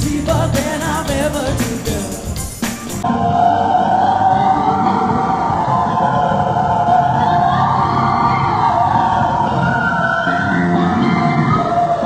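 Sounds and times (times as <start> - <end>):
pop band playing: 0.0 - 3.5.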